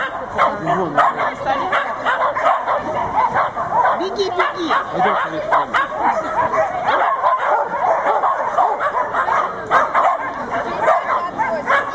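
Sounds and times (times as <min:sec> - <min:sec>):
dogs barking and yipping: 0:00.0 - 0:11.9.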